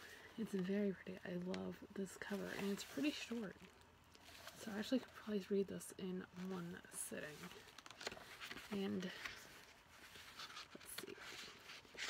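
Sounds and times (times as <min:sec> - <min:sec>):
book pages flipping: 0:00.4 - 0:05.4, 0:06.3 - 0:12.0.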